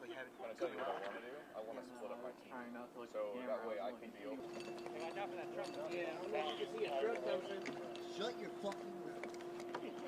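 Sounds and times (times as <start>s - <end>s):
people talking indistinctly: 0.0s - 10.0s
steady hum: 0.0s - 10.0s.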